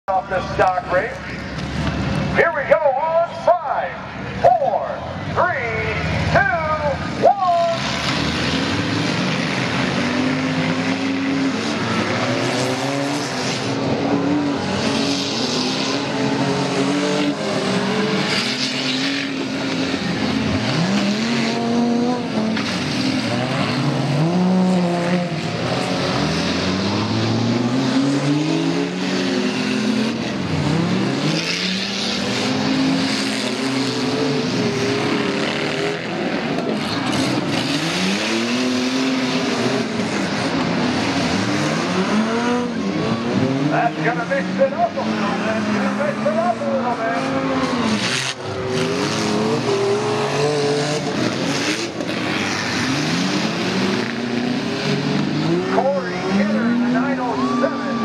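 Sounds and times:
car engines revving hard: 0.0 - 58.0.

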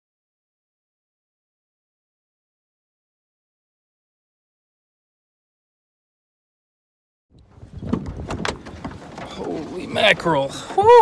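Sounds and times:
gusty wind buffeting microphone: 7.3 - 11.0
knocks and clunks in truck: 7.5 - 10.1.

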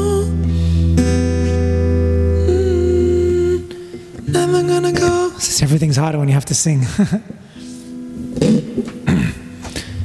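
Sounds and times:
acoustic guitar ringing: 0.0 - 5.7, 7.5 - 9.9
person laughing: 6.8 - 7.4.

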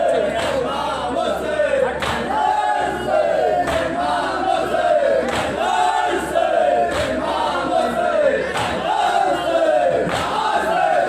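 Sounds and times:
men chanting through loudspeaker: 0.0 - 11.0
chest-beating slaps: 10.0 - 10.4.

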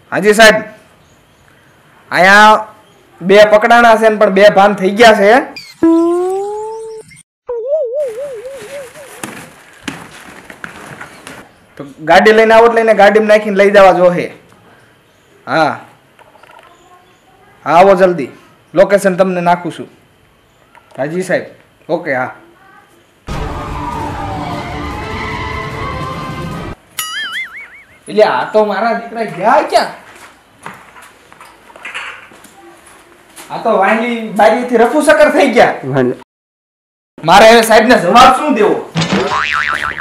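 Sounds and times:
warbling tone: 27.0 - 28.1.

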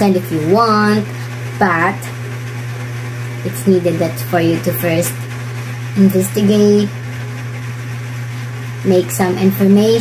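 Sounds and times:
woman speaking: 0.0 - 2.2, 3.4 - 5.3, 6.0 - 7.0, 8.8 - 10.0
steady low hum: 0.0 - 10.0.

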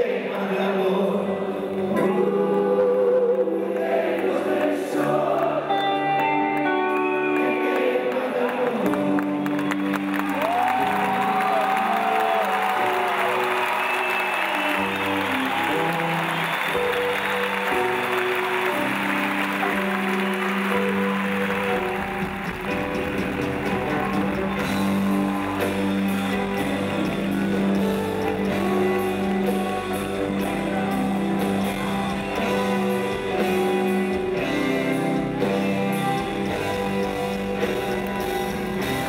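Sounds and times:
rock band playing live: 0.9 - 39.0
crowd applauding and cheering: 1.8 - 39.0.

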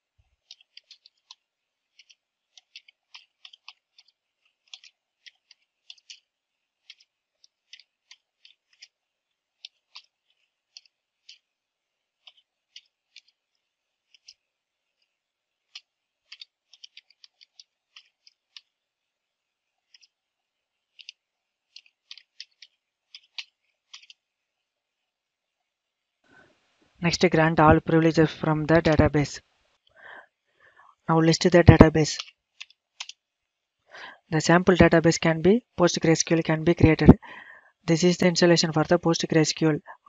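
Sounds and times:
keyboard keys clicking: 31.7 - 33.2.

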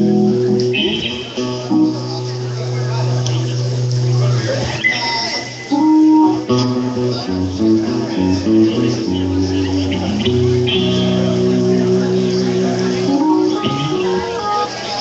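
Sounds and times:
bass guitar: 0.0 - 14.7
guitar: 0.0 - 15.0.

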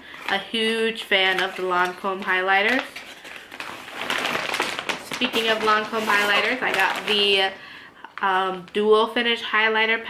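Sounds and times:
gift bag rustling: 0.0 - 7.6.

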